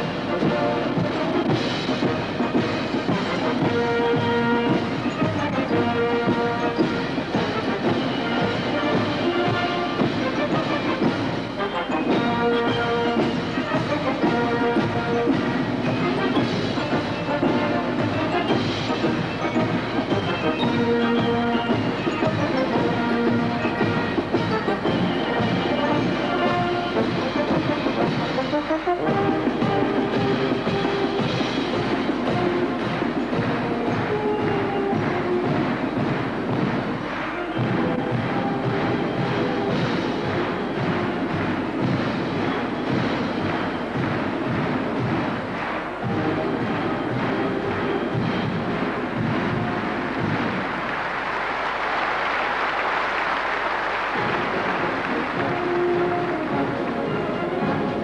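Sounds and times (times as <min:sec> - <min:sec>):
military brass band playing: 0:00.0 - 0:58.0
steady drum rhythm: 0:00.0 - 0:58.0.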